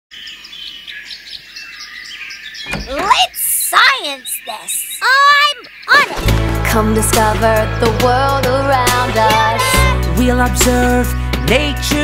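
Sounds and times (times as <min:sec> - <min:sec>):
birds chirping: 0:00.1 - 0:12.0.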